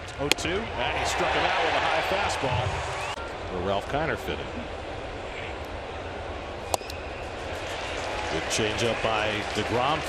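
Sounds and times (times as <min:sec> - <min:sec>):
ballpark background noise: 0:00.0 - 0:10.0.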